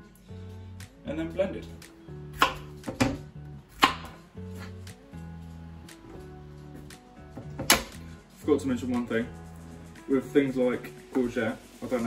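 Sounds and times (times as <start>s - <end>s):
background music with low notes: 0.0s - 12.0s
knife chopping on plastic board: 2.4s - 4.8s, 7.4s - 8.0s.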